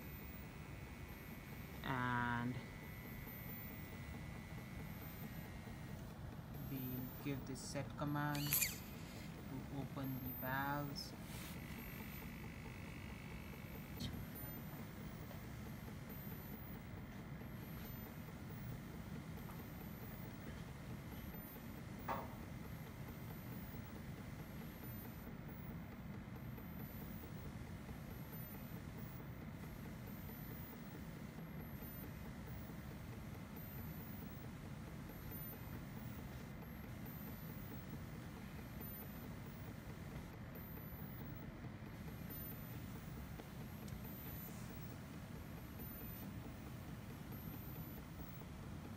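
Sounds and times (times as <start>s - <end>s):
pump motor hum and whine: 0.0s - 48.9s
faint clicks: 40.8s - 44.5s.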